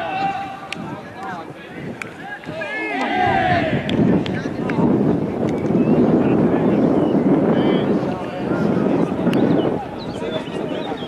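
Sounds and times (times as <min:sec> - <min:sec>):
faint distant voices: 0:00.0 - 0:11.0
wind buffeting microphone: 0:00.0 - 0:11.0.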